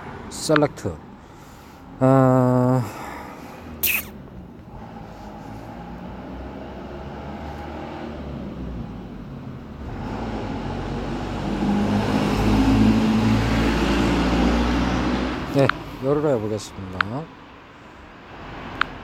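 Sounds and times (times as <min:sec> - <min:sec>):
motor vehicle engine rumble: 0:00.0 - 0:19.0.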